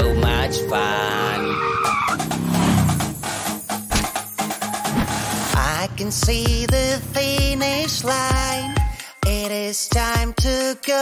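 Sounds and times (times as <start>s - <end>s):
upbeat background music: 0.0s - 11.0s
tyres screeching: 1.1s - 5.5s.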